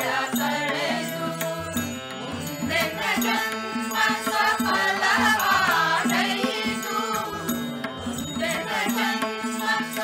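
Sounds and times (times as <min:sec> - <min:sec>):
group singing devotional song: 0:00.0 - 0:10.0
harmonium held notes: 0:00.0 - 0:10.0
tabla: 0:00.0 - 0:10.0.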